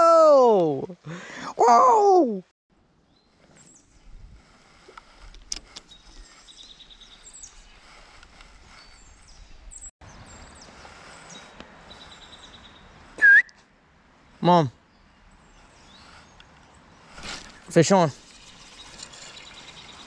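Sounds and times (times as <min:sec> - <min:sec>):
small birds chirping: 0:03.0 - 0:13.2, 0:14.2 - 0:20.0.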